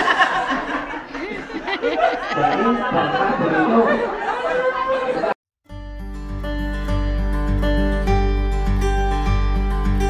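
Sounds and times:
guitar music: 0:05.7 - 0:10.0.

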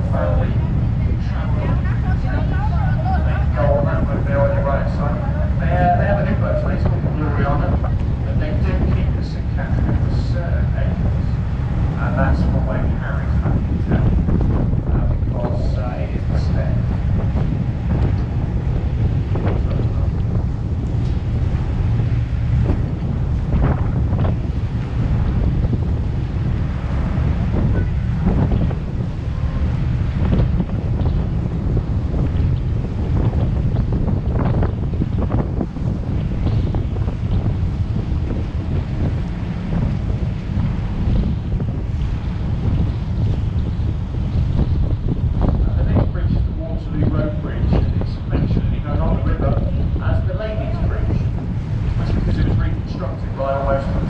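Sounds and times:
boat wash rushing on water: 0:00.0 - 0:54.0
wind buffeting microphone: 0:00.0 - 0:54.0.

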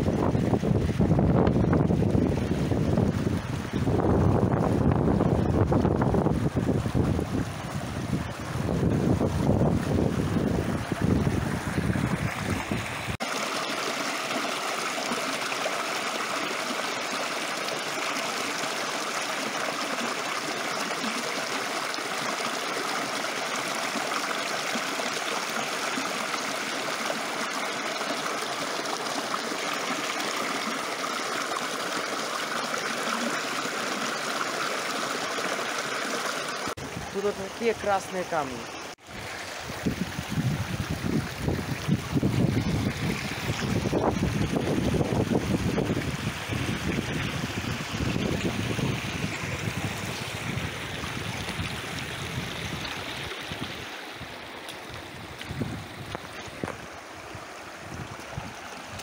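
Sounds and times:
wind buffeting microphone: 0:00.0 - 0:13.2, 0:39.1 - 0:59.0
stream running over stones: 0:00.0 - 0:59.0.

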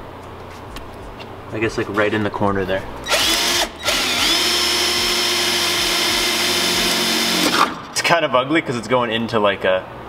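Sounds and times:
cordless drill boring plastic: 0:03.1 - 0:07.8.

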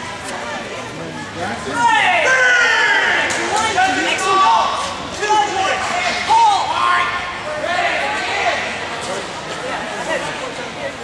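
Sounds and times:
people talking in echoing hall: 0:00.0 - 0:11.0.

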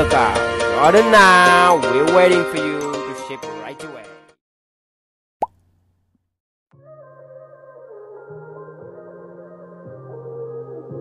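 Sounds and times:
background music: 0:00.0 - 0:04.3.

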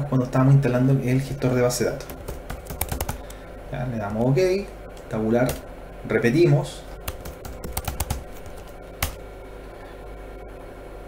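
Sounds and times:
keyboard typing clicks: 0:02.0 - 0:03.4, 0:07.0 - 0:09.2.

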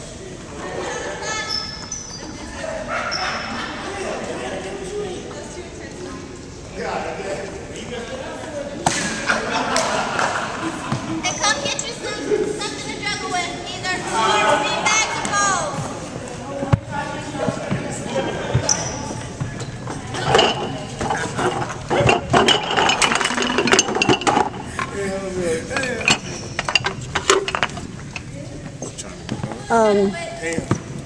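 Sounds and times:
voices echoing in a gymnasium: 0:00.0 - 0:31.0.

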